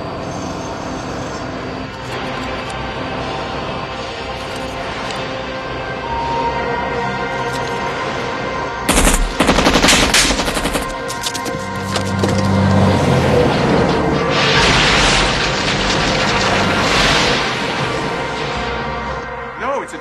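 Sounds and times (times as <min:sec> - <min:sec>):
film soundtrack music: 0:01.9 - 0:20.0
rapid gunfire-like cracks: 0:08.9 - 0:11.2
loud rushing noise: 0:12.5 - 0:19.6.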